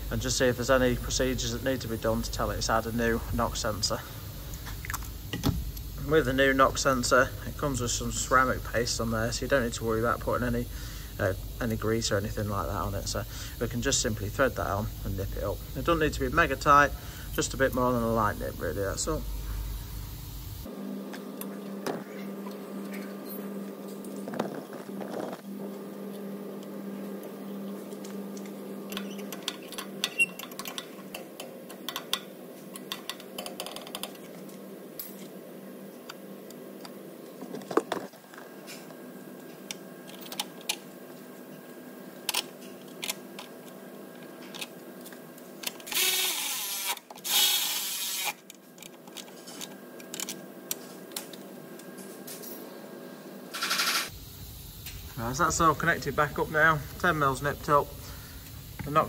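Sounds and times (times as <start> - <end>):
steady low hum: 0.0 - 59.0.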